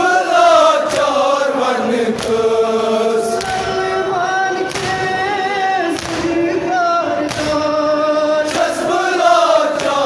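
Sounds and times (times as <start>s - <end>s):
sharp slap: 0.8s - 1.4s, 2.1s - 2.5s, 3.4s - 3.8s, 4.6s - 5.3s, 5.9s - 6.5s, 7.2s - 7.8s, 8.4s - 8.9s, 9.7s - 10.0s
man chanting through microphone: 1.5s - 10.0s.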